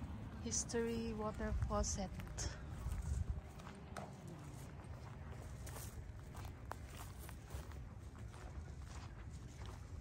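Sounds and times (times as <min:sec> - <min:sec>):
footsteps on grass and dirt: 0:01.1 - 0:10.0.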